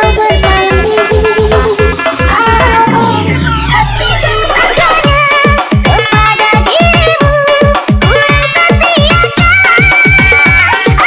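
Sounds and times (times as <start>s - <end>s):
kick drum: 0.0s - 3.0s, 5.0s - 11.0s
pitch-sliding synth melody: 0.0s - 5.5s.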